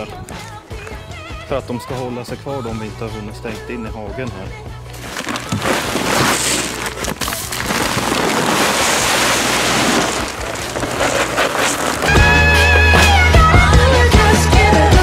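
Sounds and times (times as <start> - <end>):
music: 0.0 - 7.8, 12.0 - 15.0
pellets pouring into trough: 5.0 - 12.8.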